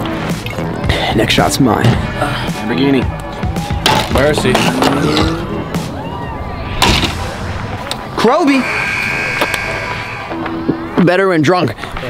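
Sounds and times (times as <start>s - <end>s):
low rumble: 5.4s - 10.7s
loud bang: 6.6s - 10.4s.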